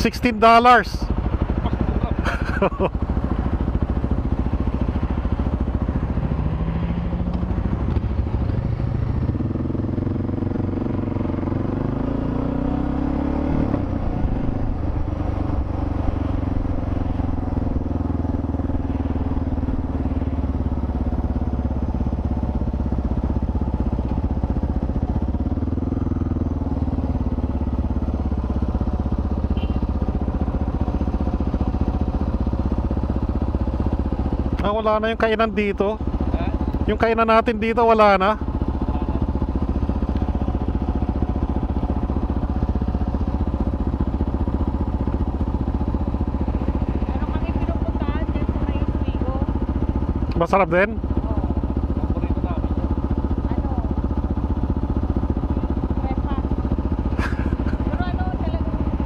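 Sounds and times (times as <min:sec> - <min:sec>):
motorcycle engine accelerating: 0:00.0 - 0:59.0
road and wind noise: 0:00.0 - 0:59.0.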